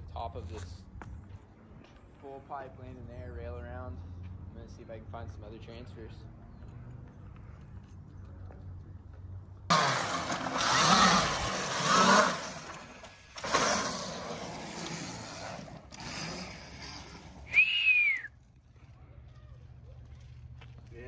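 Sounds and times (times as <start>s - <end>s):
dirt bike engine revving: 9.7s - 17.6s.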